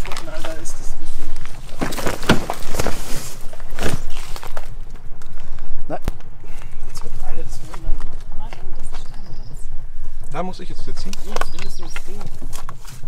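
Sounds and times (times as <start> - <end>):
low voices: 0.0 - 1.9, 5.0 - 13.0.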